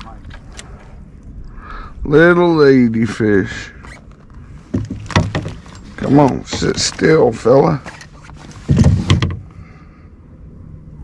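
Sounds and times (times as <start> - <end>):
fish knocking on plastic kayak: 4.7 - 5.6.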